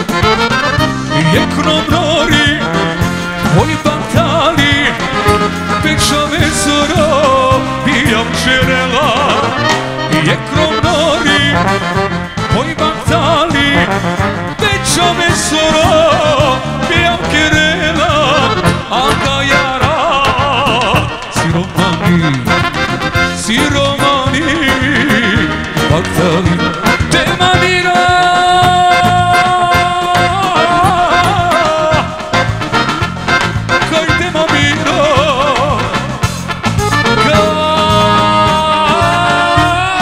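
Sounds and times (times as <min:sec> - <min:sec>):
drums and bass beat: 0:00.0 - 0:40.0
live band music: 0:00.0 - 0:40.0
ornamented lead melody: 0:00.0 - 0:40.0.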